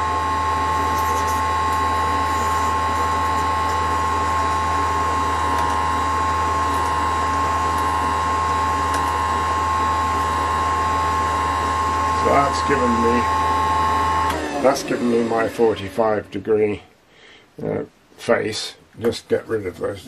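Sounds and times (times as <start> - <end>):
power hone humming and whining: 0.0 - 16.4.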